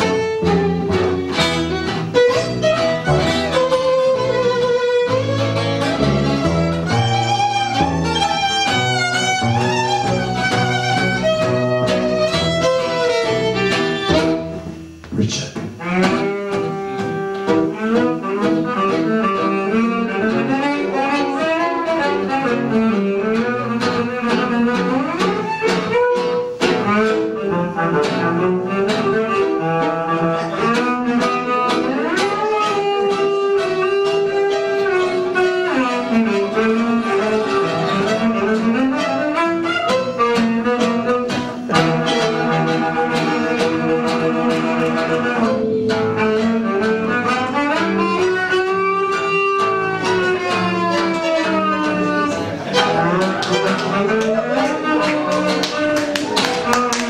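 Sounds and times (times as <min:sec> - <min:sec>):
tango music on bowed strings: 0:00.0 - 0:15.0, 0:15.7 - 0:57.0.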